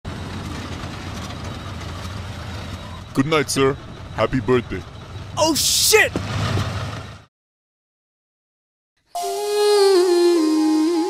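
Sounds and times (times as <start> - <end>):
engine humming: 0.1 - 7.3.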